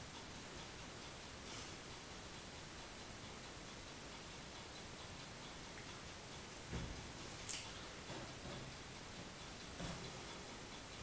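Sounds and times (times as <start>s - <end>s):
faint steady ticking: 0.0s - 11.0s.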